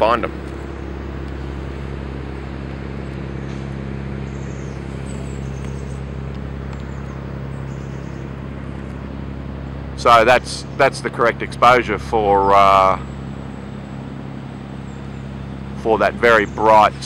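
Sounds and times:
distant city traffic hum: 0.0s - 17.0s.

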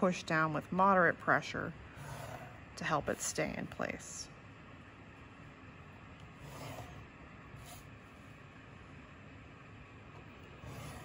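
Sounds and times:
pencil and ruler scratching on paper: 2.0s - 3.4s, 6.4s - 7.9s, 10.6s - 11.0s
sharp scrape: 6.4s - 7.0s, 10.6s - 11.0s.

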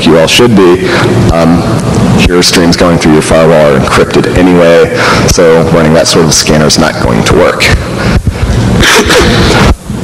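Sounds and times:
man coughing: 8.8s - 9.8s.

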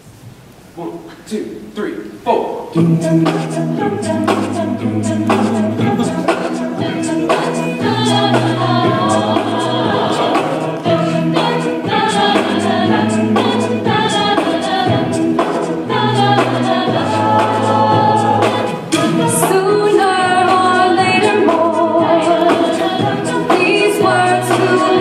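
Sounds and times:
vocal percussion hits: 2.2s - 25.0s
group singing in chords: 2.7s - 25.0s.

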